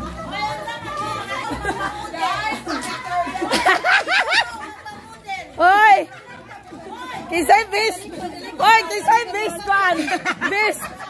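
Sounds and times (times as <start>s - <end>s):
people talking: 0.2s - 11.0s.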